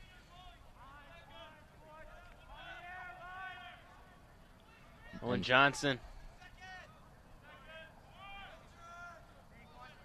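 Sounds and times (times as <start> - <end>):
distant voices shouting: 0.0 - 10.0.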